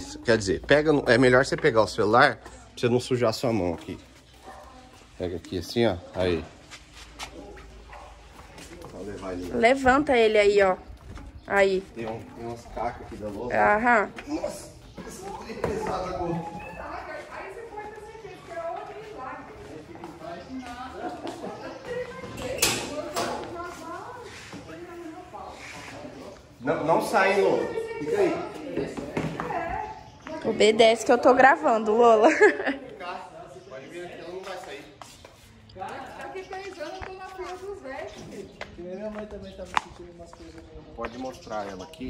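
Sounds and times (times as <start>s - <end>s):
indistinct voices talking: 0.0s - 42.0s.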